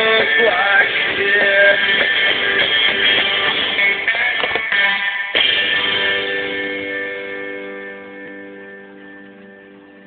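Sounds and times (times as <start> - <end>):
guitar chord ringing: 0.0 - 10.0.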